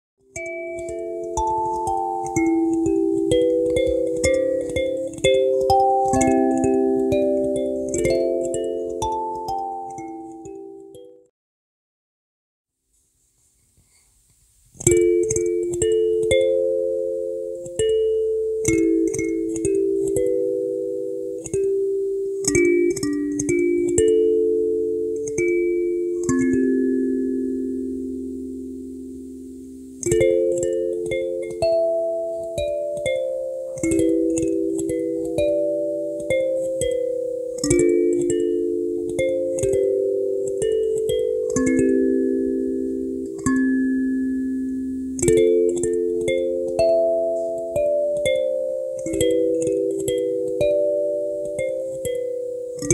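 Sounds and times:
kalimba melody: 0.3 - 11.2, 14.8 - 52.9.

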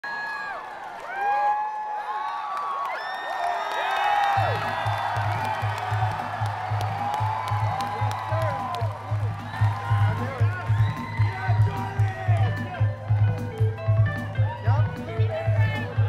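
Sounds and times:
crowd cheering and whooping: 0.0 - 16.0.

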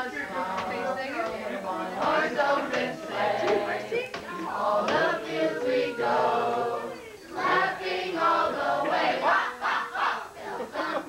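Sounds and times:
group of people singing: 0.0 - 11.0.

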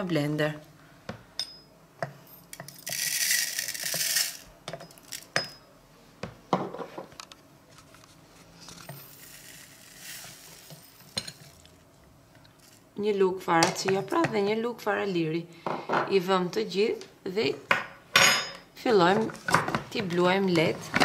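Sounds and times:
seeds pouring into plastic bowl: 2.8 - 4.4, 8.9 - 11.6.

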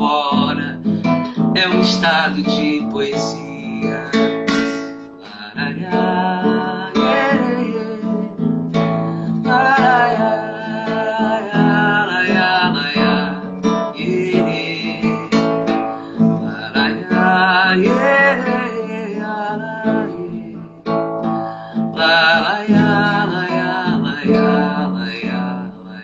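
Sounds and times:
acoustic guitar strumming: 0.0 - 26.0
woman singing wordlessly: 5.6 - 8.3, 9.2 - 13.3, 14.0 - 25.4.

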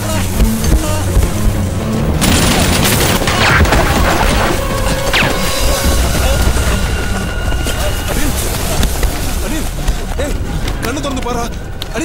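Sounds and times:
film music score: 0.0 - 12.0
explosions booming: 1.2 - 10.0.

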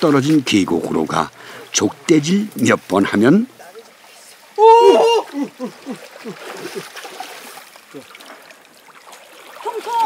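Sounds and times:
brook water splashing and trickling: 0.0 - 10.0
water running through net mesh: 0.0 - 10.0.

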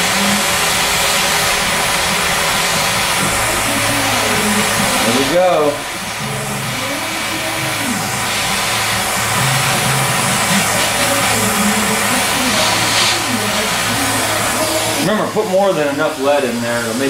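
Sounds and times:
gas torch flame hissing: 0.0 - 17.0.

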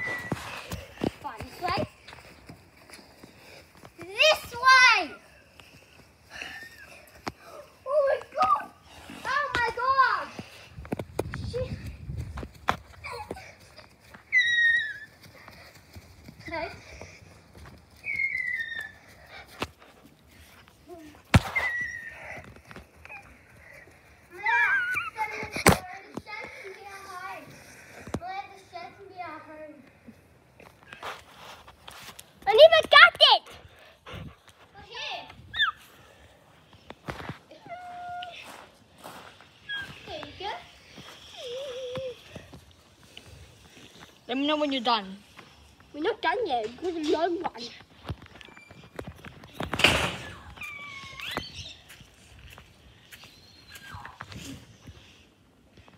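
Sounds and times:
girls squealing and laughing: 0.0 - 1.0, 6.2 - 10.0, 12.9 - 15.6, 17.9 - 19.6, 21.0 - 26.4, 35.4 - 36.0, 37.5 - 38.6, 39.2 - 42.8, 50.0 - 52.0.

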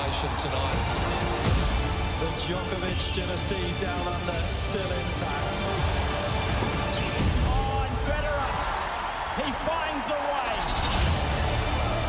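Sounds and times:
spectators calling out and cheering: 0.0 - 12.0.

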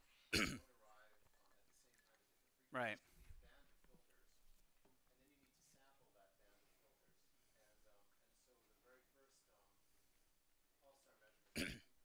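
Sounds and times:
man clearing throat: 0.3 - 0.8, 11.5 - 12.0.

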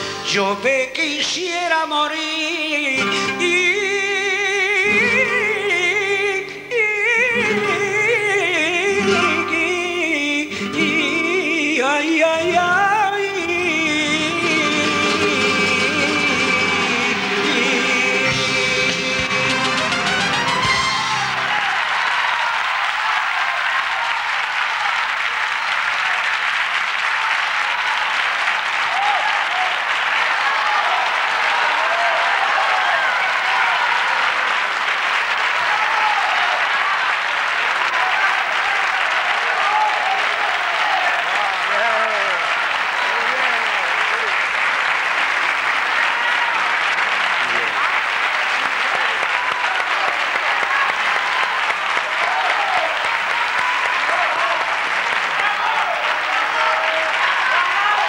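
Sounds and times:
audience applauding: 12.6 - 58.0.

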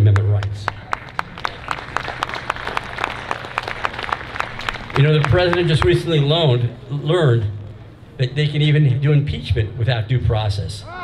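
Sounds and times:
audience applauding: 0.7 - 6.6.

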